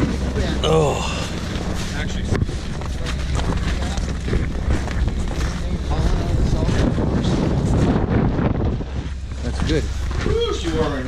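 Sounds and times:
footsteps crunching in snow: 0:00.0 - 0:11.0
wind buffeting microphone: 0:00.0 - 0:11.0.

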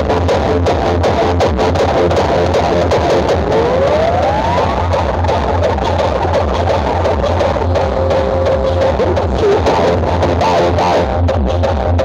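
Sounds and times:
loud dance music with heavy bass: 0:00.0 - 0:12.0
rising synth sweep: 0:01.9 - 0:11.2.

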